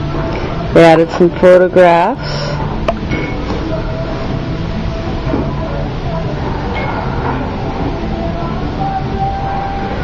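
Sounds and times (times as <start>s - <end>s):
faint steady hums: 0.0s - 10.0s
low rumbling background noise: 0.0s - 10.0s.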